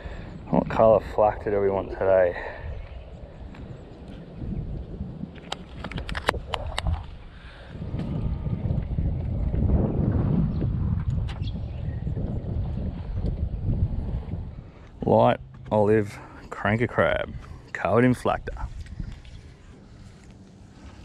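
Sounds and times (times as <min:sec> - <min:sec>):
wind rumble on microphone: 0:00.0 - 0:21.0.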